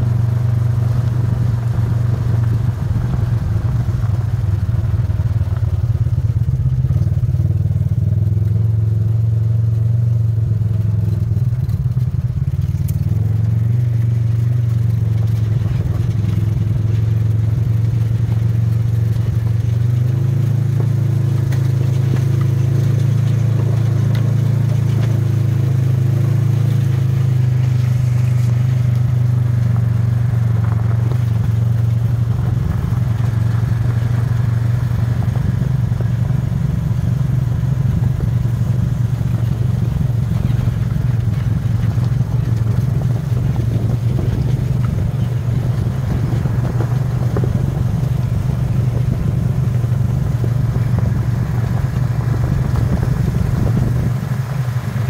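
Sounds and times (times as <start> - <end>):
utility vehicle engine running: 0.0 - 55.0.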